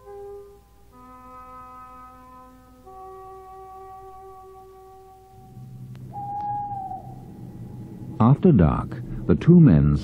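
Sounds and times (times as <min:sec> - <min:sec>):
held musical chord: 0:00.0 - 0:10.0
low rumble: 0:05.5 - 0:09.6
owl hoot: 0:06.1 - 0:07.5.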